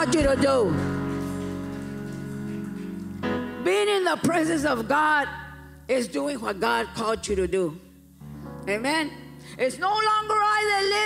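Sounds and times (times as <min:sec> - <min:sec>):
soft sustained chord music: 0:00.0 - 0:10.6.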